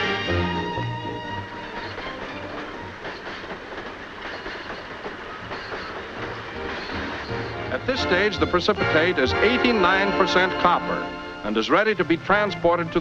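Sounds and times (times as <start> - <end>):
train cars rolling: 0.0 - 13.0
wheels clicking over rail joints: 1.7 - 7.8.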